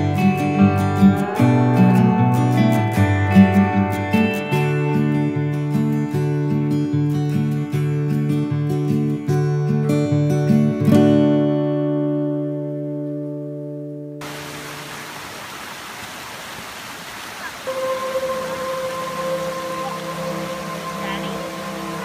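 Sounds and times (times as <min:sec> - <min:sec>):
held musical tone: 0:00.0 - 0:05.7, 0:17.7 - 0:22.0
acoustic guitar music: 0:00.0 - 0:14.2, 0:17.7 - 0:22.0
rocky creek rushing: 0:14.2 - 0:22.0.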